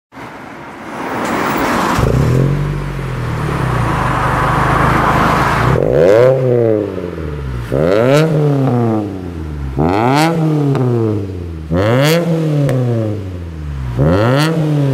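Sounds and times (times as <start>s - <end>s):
car engine revving: 1.8s - 14.9s.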